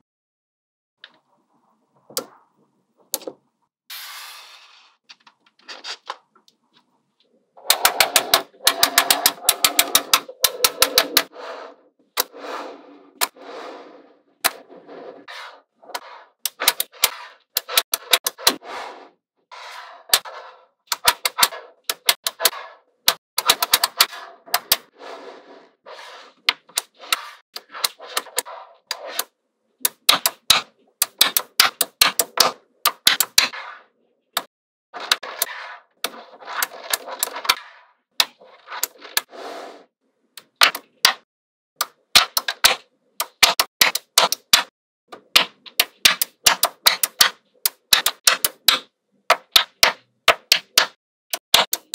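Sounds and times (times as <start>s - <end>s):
magnetic balls clicking: 7.6s - 11.3s.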